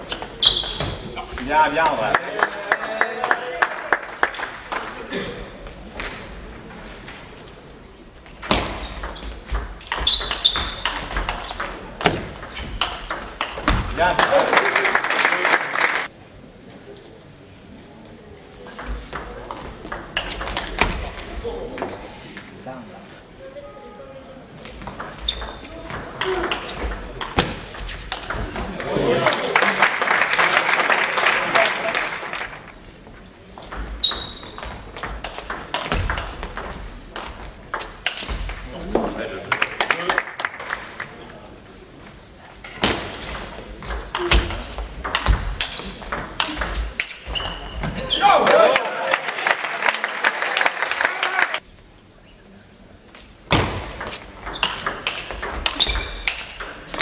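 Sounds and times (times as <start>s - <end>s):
table tennis ball hits: 33.8s - 38.6s, 44.2s - 47.5s, 53.5s - 57.0s.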